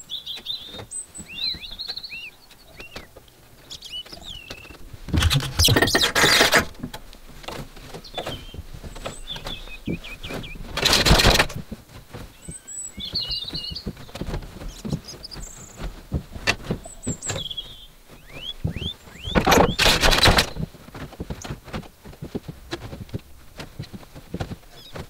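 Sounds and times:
birds chirping: 0.0 - 25.0
wooden loom knocking and clattering: 4.4 - 25.0.

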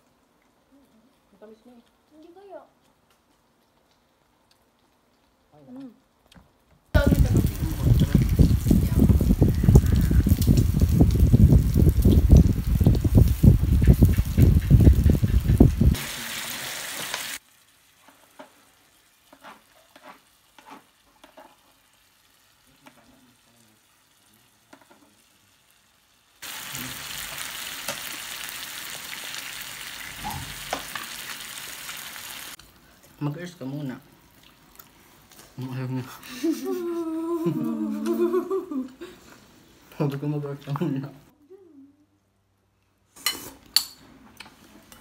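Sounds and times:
pork sizzling on grill: 1.1 - 36.6
woman humming with closed lips: 36.6 - 39.0.

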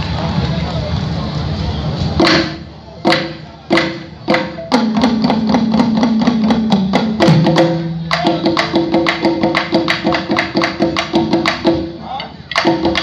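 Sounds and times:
crowd voices: 0.0 - 13.0
balafon notes: 2.2 - 13.0
djembe drumming: 2.2 - 13.0.

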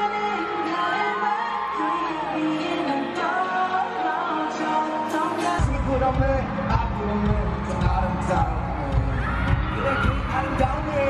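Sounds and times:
crowd: 0.0 - 11.0
person singing: 0.0 - 11.0.

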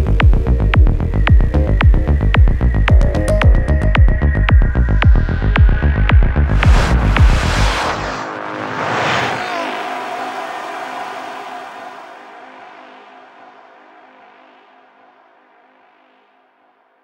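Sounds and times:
sustained synth drone: 0.0 - 16.9
kick-drum beat: 0.1 - 7.4
whooshing noise sweep: 6.3 - 13.1.

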